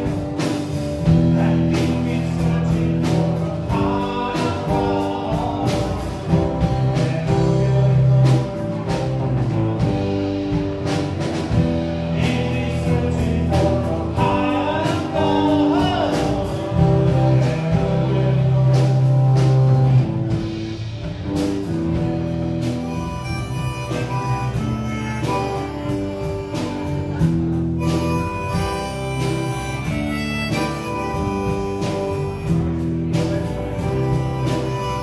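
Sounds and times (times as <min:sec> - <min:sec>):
bass guitar: 0:00.0 - 0:35.0
drum kit with cymbals: 0:00.0 - 0:35.0
electric guitar lead melody: 0:00.0 - 0:35.0.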